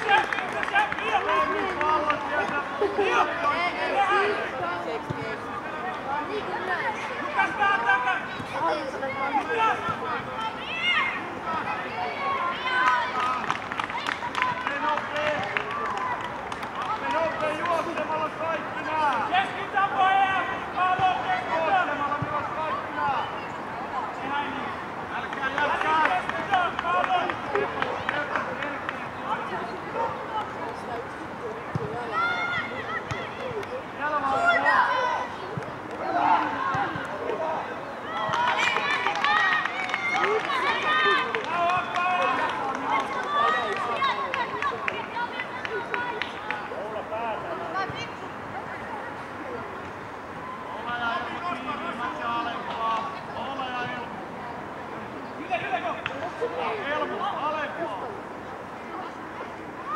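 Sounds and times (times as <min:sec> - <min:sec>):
children shouting: 0:06.9 - 0:14.8, 0:32.0 - 0:35.4, 0:36.0 - 0:46.6.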